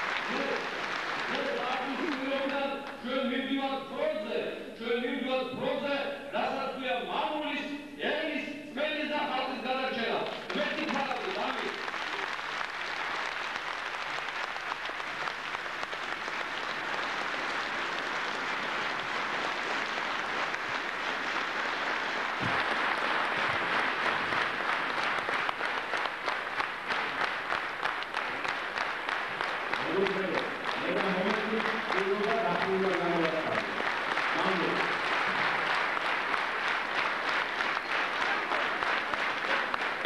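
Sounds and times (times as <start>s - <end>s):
audience applauding: 0.0s - 3.2s, 10.0s - 40.0s.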